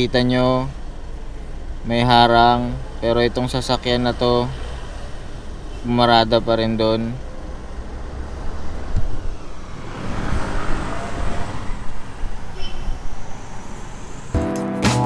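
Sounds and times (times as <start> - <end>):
traffic outside: 0.0 - 14.5
background music with a beat: 14.4 - 15.0.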